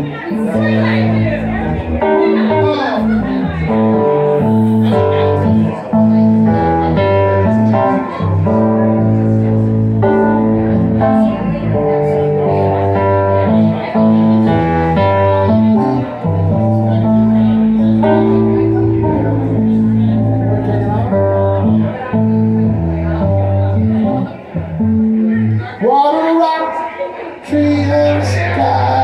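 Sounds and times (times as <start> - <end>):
electric guitar: 0.0 - 25.8
keyboard chords: 0.0 - 29.0.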